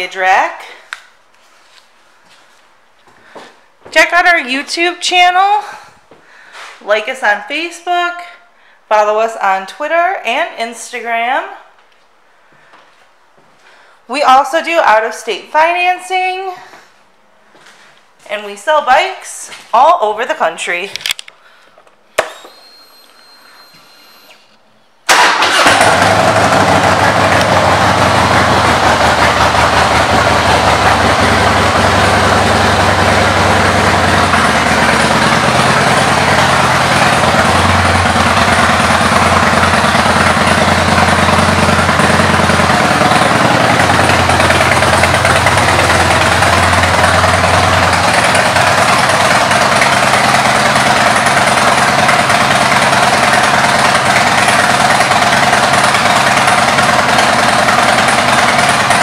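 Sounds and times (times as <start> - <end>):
motorcycle engine idling loudly: 25.2 - 59.0.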